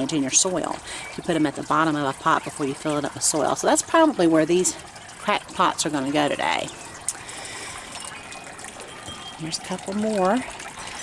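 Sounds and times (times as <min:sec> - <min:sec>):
fountain trickling and bubbling: 0:00.0 - 0:11.0.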